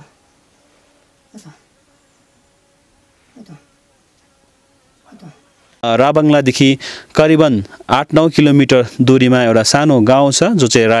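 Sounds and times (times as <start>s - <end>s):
faint steady hum: 0.0s - 11.0s
man moaning weakly: 1.3s - 1.7s, 3.3s - 3.7s, 5.1s - 5.5s.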